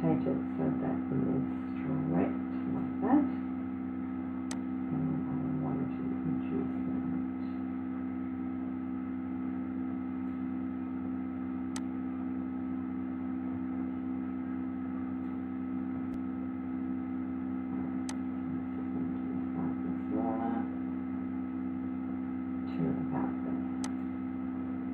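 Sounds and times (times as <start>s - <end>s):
electrical hum: 0.0s - 24.9s.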